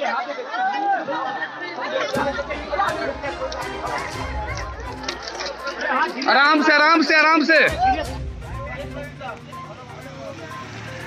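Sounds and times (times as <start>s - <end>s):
people talking: 0.0s - 11.0s
van engine rumbling: 7.7s - 11.0s.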